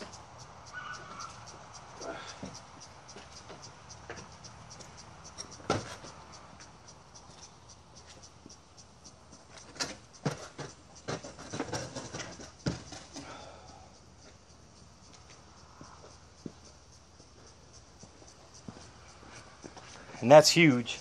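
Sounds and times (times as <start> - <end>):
wood knocking on concrete: 9.8 - 13.0.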